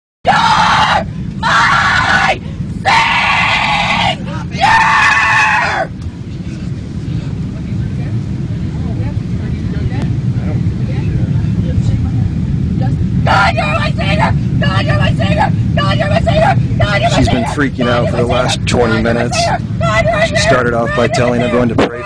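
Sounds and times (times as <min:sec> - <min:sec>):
airliner cabin drone: 0:00.2 - 0:22.0
faint voices: 0:00.3 - 0:22.0.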